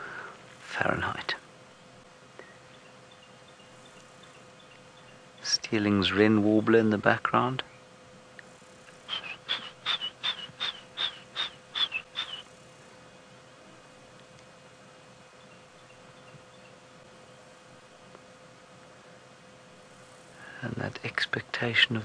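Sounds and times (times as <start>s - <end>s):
bird calling sharp high notes: 9.1s - 12.5s.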